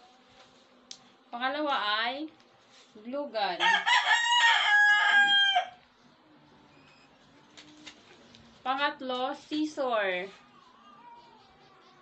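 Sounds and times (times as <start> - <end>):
rooster crowing: 3.6 - 5.8.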